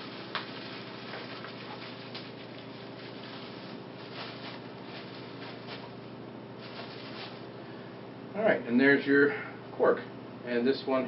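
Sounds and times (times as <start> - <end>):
packaging rustling: 0.0 - 6.0, 6.6 - 7.5
low room hum: 0.0 - 11.0.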